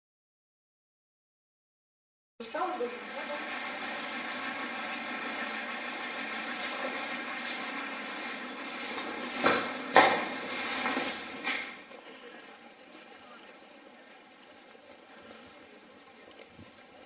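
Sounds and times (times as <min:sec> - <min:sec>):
sharp knocks: 0:09.4 - 0:10.3.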